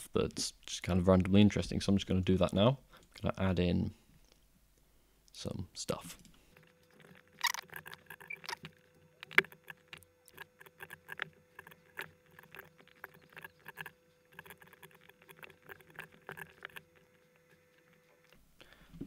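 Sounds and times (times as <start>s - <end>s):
faint steady hum: 0.0s - 19.0s
mouse and keyboard clicking: 7.4s - 17.2s.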